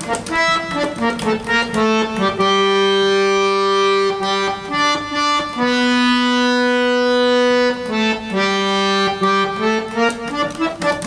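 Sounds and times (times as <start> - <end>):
harmonium notes: 0.0 - 11.0.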